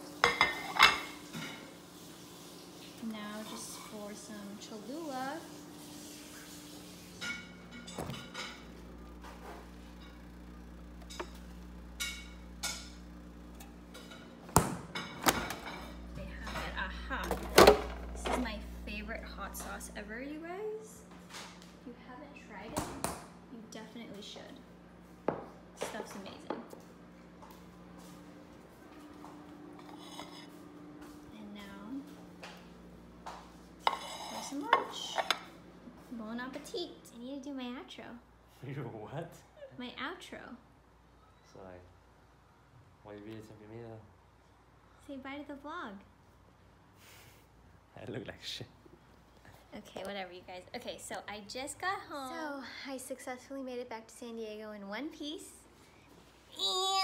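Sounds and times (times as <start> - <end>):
refrigerator hum: 0.0 - 52.8
plate and bottle set on countertop: 33.3 - 35.5.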